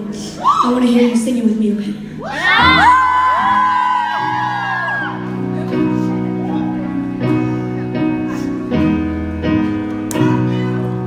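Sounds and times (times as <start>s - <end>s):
audience screaming and whooping: 2.2s - 7.5s
keyboard holding sustained chords: 2.4s - 11.0s.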